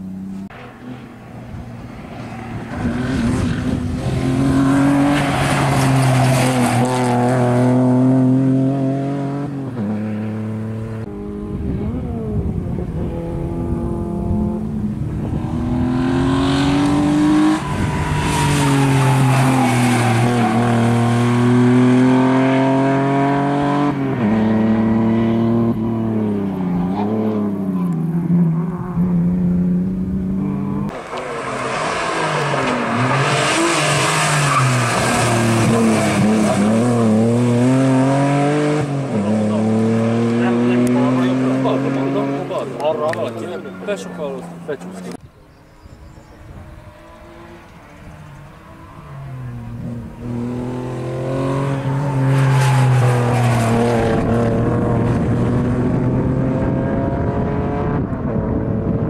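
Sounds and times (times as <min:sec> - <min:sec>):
car engine revving: 0:00.0 - 0:45.2, 0:46.2 - 0:59.0.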